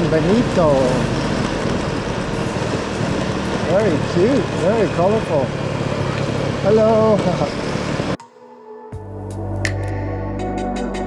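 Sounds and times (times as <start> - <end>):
small scooter engine running: 0.0 - 8.2
wind and road noise: 0.0 - 8.2.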